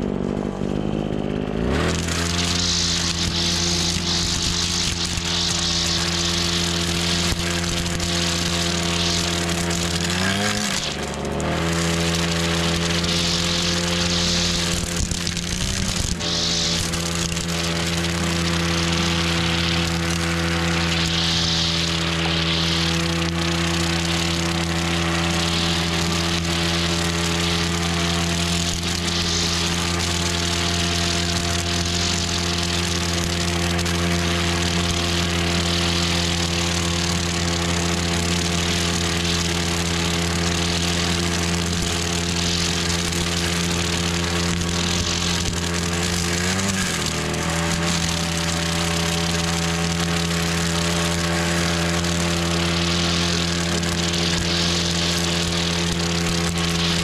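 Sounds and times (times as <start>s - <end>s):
blade cutting grass: 0.0s - 57.0s
brush cutter engine running: 0.0s - 57.0s.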